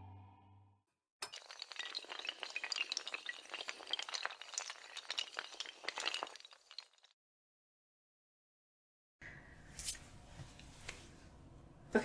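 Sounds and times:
small hard tiles clattering: 1.2 - 7.2.

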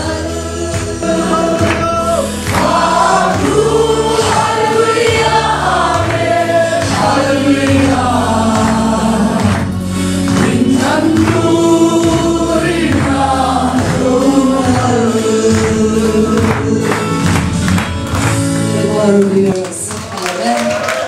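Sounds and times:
instrumental accompaniment with bass: 0.0 - 20.3
congregation singing worship song: 0.0 - 21.0.

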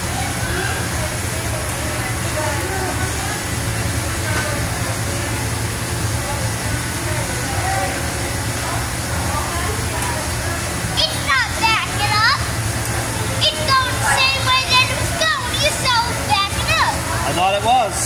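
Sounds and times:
indistinct chatter: 0.0 - 18.0
low hum and hiss: 0.0 - 18.0.

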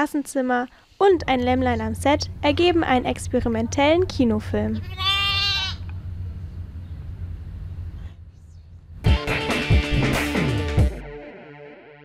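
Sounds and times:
low background hum: 1.0 - 9.0
lamb bleating: 4.8 - 5.9.

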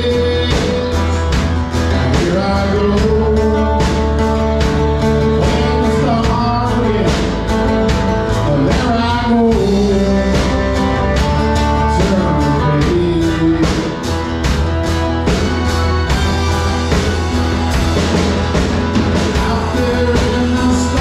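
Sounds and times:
bass guitar: 0.0 - 21.0
bending lead guitar melody: 0.0 - 21.0
drums: 0.0 - 21.0
guitar chords: 0.0 - 21.0.

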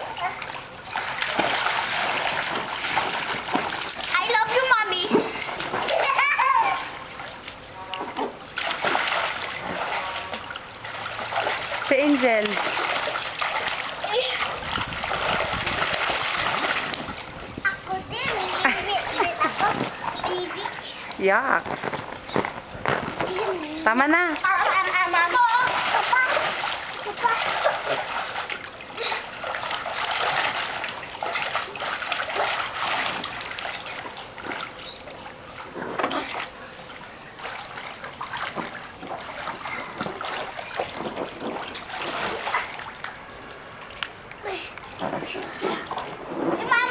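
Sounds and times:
water splashing in paddling pool: 0.0 - 46.9
children's voices and squeals: 5.9 - 6.9, 46.6 - 46.9.

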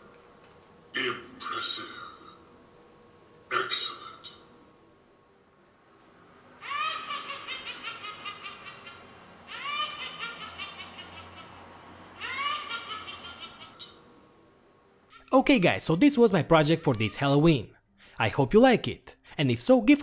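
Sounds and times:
witch cackling laugh: 6.6 - 14.0.

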